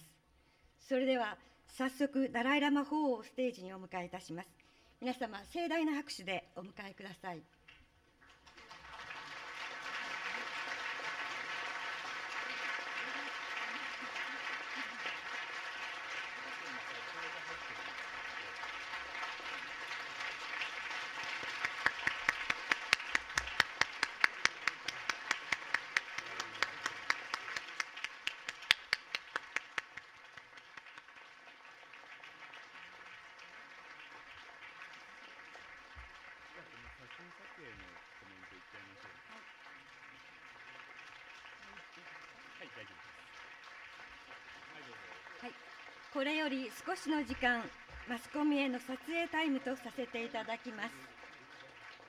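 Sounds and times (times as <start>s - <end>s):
audience applause: 8.2s - 52.0s.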